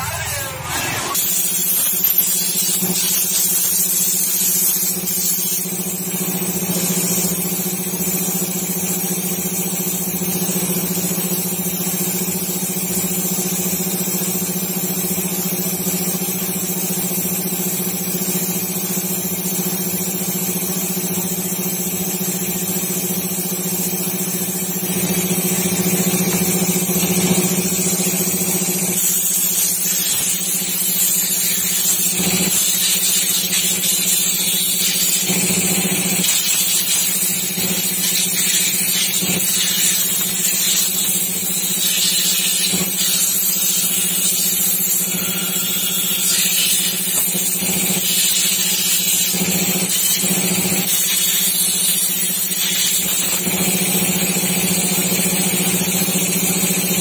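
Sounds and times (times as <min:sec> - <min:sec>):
steady machine hum: 0:00.0 - 0:05.0, 0:23.6 - 0:51.8
compressed air hissing: 0:28.9 - 0:50.2.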